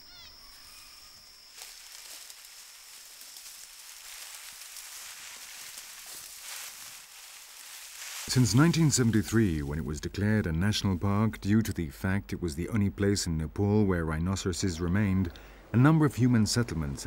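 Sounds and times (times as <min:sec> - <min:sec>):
bird calls: 0:00.0 - 0:01.6
high insect buzz: 0:00.0 - 0:08.2
rustling through dry grass: 0:00.1 - 0:10.2.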